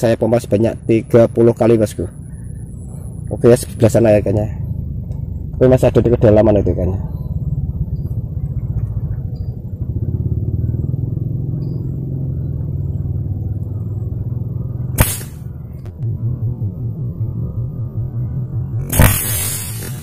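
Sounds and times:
low rumble: 0:00.0 - 0:20.0
spear gun firing crack: 0:15.0 - 0:15.5, 0:18.9 - 0:20.0.

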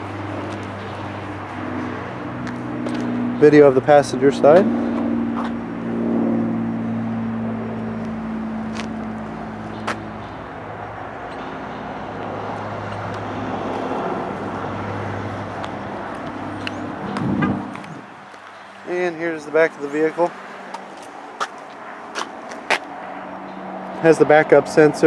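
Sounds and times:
motor vehicle engine hum: 0:00.0 - 0:25.0
outdoor lot noise: 0:00.0 - 0:25.0.

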